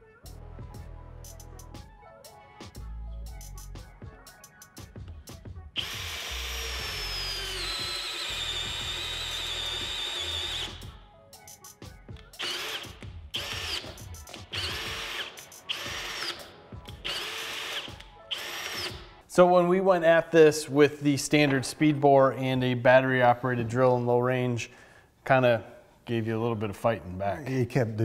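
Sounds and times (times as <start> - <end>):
cordless drill boring wood: 5.8 - 10.9, 12.4 - 19.1.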